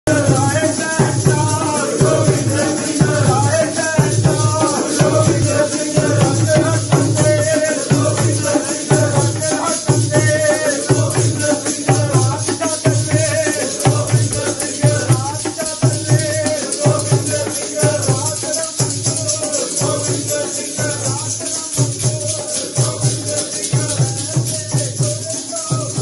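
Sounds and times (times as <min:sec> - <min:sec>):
devotional singing: 0:00.1 - 0:26.0
jingling percussion: 0:00.1 - 0:26.0
steady drum beat: 0:00.1 - 0:26.0.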